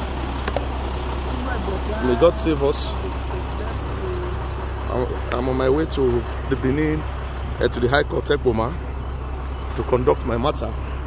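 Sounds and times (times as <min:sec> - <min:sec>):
lorry engine idling: 0:00.0 - 0:11.0.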